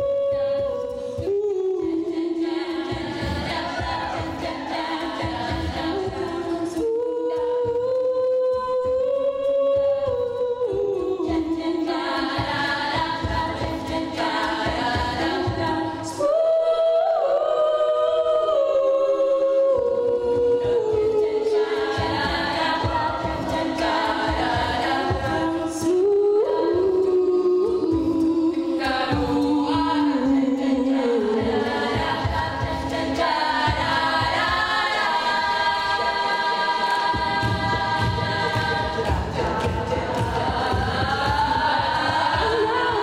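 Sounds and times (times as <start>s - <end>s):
low rhythmic beat: 0.0s - 9.0s, 19.9s - 43.0s
female a cappella group singing: 0.0s - 43.0s.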